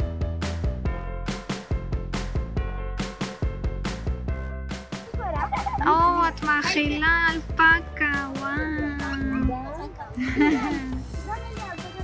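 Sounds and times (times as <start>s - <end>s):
upbeat music with drum beat: 0.0s - 12.0s.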